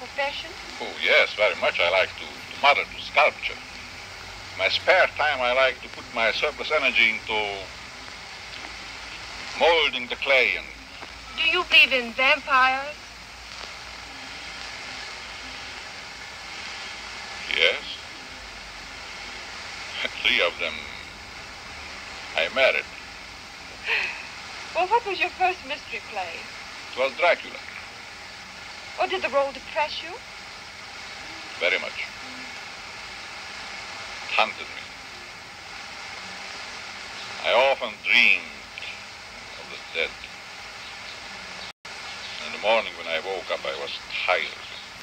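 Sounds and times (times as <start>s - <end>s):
film soundtrack hiss and hum: 0.0s - 45.0s.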